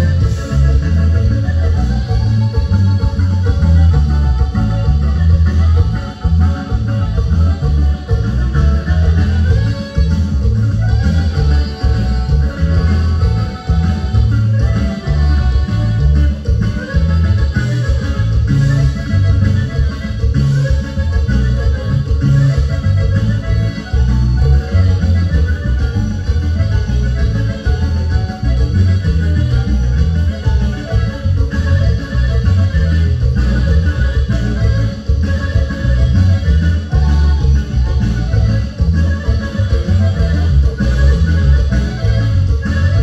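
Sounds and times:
guitar: 0:00.0 - 0:43.0
heavy bass line: 0:00.0 - 0:43.0
live band playing dance music: 0:00.0 - 0:43.0.

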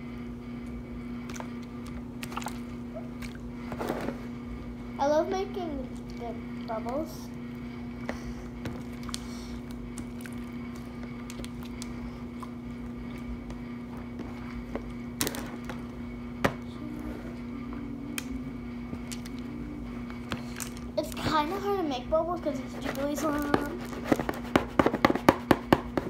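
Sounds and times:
steady low hum: 0:00.0 - 0:26.0.

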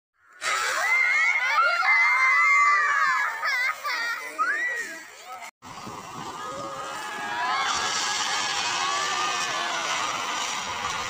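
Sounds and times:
children screaming: 0:00.3 - 0:11.0.

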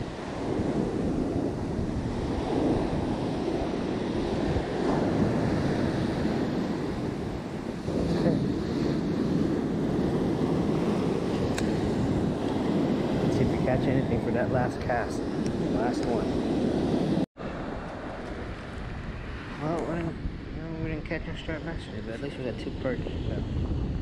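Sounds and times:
ocean surf breaking: 0:00.0 - 0:24.0
wind buffeting microphone: 0:00.0 - 0:24.0.

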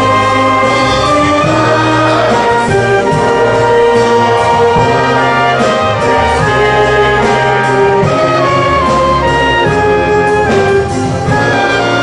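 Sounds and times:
sharp drum strokes: 0:00.0 - 0:12.0
wind band playing: 0:00.0 - 0:12.0.

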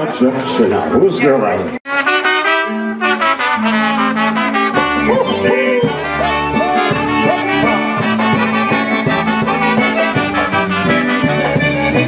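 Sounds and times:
concertina: 0:01.9 - 0:12.0
trumpets: 0:01.9 - 0:12.0
piano accordion: 0:02.6 - 0:12.0
steady drum beat: 0:04.6 - 0:12.0.

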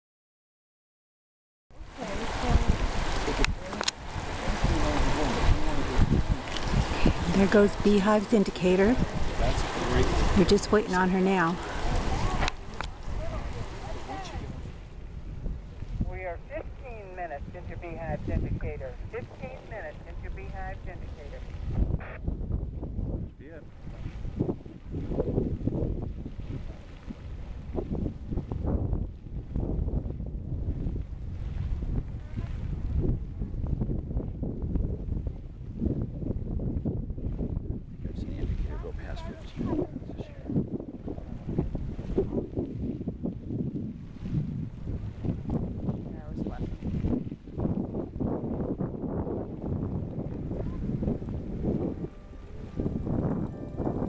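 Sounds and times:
wind buffeting microphone: 0:01.8 - 0:54.0.

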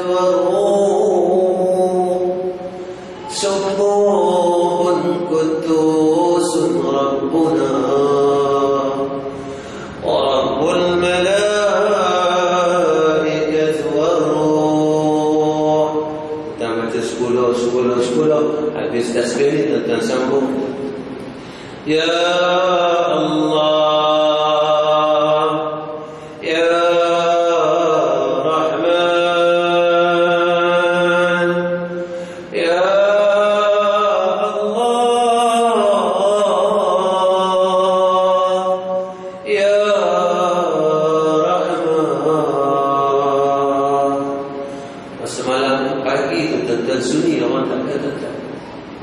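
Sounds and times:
man chanting: 0:00.0 - 0:21.0, 0:21.8 - 0:48.4.

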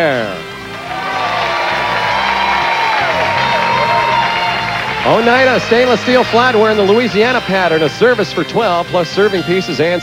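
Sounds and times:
game show music: 0:00.0 - 0:10.0
studio audience cheering: 0:00.7 - 0:07.5.

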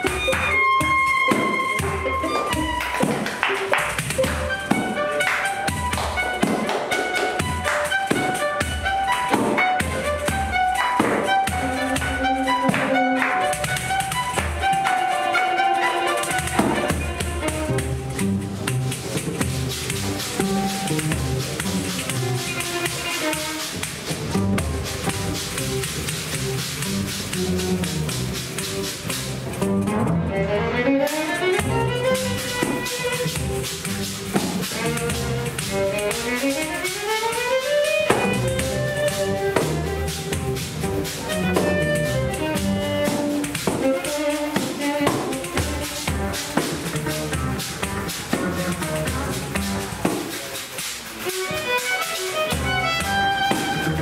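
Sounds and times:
violins bowing a melody: 0:00.0 - 0:54.0.

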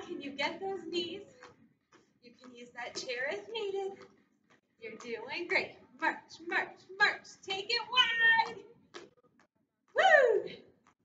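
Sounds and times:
woman calling woo: 0:10.0 - 0:10.6.

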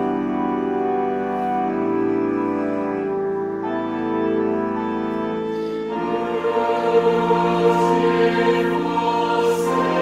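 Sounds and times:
organ: 0:00.0 - 0:10.0
choir singing: 0:05.5 - 0:10.0.

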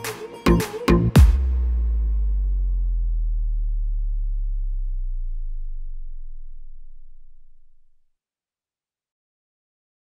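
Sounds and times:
deep electronic bass tone: 0:00.5 - 0:08.1.

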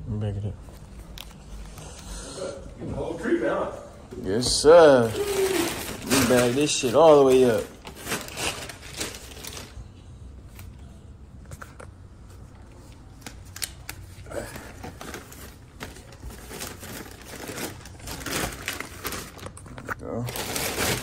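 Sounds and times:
plastic bag rustling: 0:04.3 - 0:09.9, 0:13.2 - 0:21.0.

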